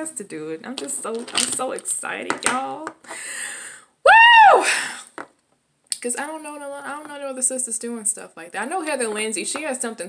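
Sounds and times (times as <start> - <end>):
woman whooping: 4.0 - 4.9.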